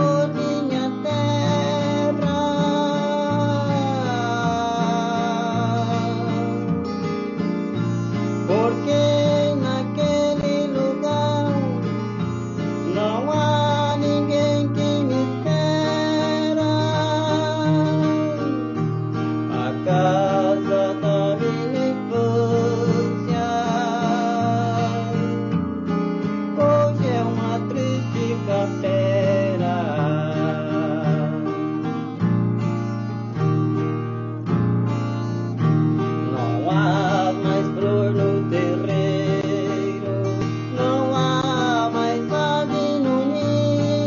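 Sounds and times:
man singing with vibrato: 0:00.0 - 0:32.4, 0:35.6 - 0:44.0
acoustic guitar plucking: 0:00.0 - 0:44.0.

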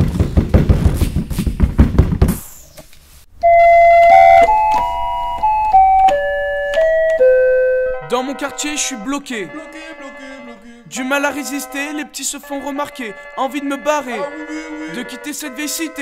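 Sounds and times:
slow piano melody: 0:03.4 - 0:16.0.

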